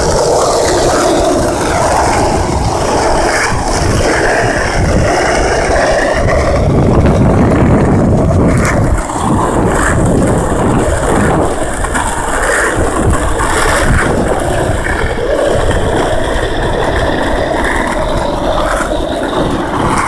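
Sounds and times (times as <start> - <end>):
skateboard wheels rolling on asphalt: 0.0 - 20.0.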